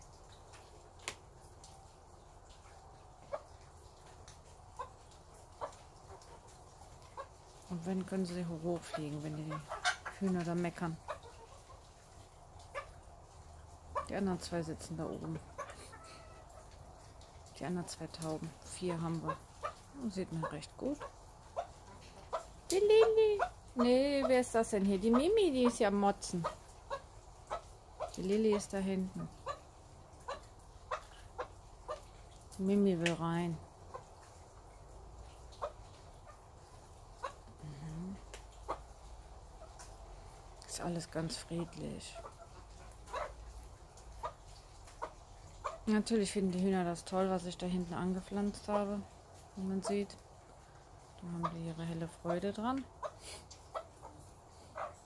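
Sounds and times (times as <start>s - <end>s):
hen clucking: 4.7s - 17.2s, 17.8s - 34.3s, 35.5s - 40.1s, 40.9s - 46.1s, 47.2s - 50.2s, 51.2s - 55.0s.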